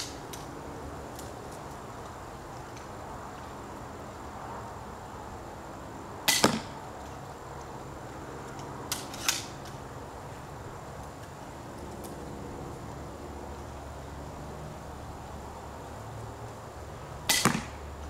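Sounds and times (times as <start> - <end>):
bolt striking target: 6.3 - 6.7, 17.3 - 17.8
crossbow shot snap: 17.3 - 17.7.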